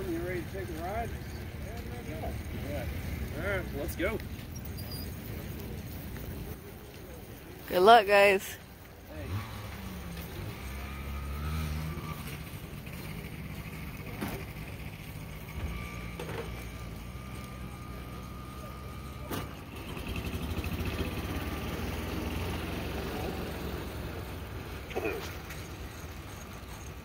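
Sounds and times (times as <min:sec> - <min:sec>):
engine rumbling: 0:00.0 - 0:27.0.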